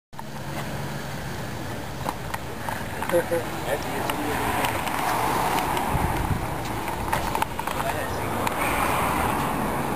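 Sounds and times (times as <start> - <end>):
people talking: 2.9 - 5.2, 7.1 - 8.8
footsteps on pavement: 4.0 - 8.6.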